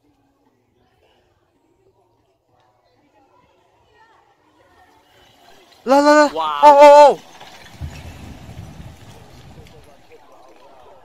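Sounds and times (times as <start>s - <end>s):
distant rockfall rumble: 7.2s - 11.0s.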